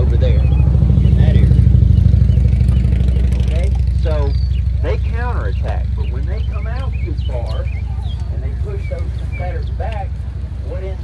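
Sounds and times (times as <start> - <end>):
engine idling: 0.0 - 11.0
faint voices: 0.0 - 11.0.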